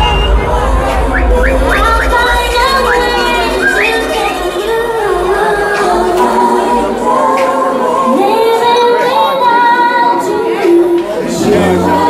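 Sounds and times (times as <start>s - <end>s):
loud singing over music: 0.0s - 12.0s.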